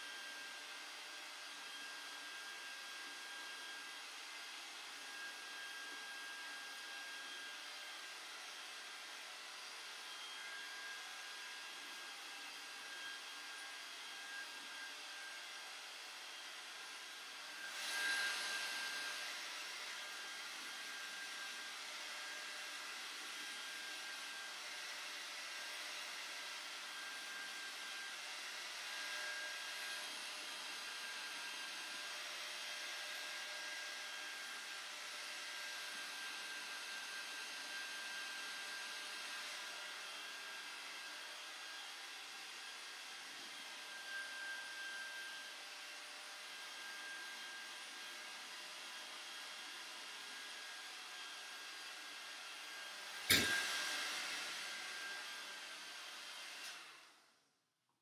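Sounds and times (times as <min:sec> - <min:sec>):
hair dryer blowing: 0:00.0 - 0:57.4.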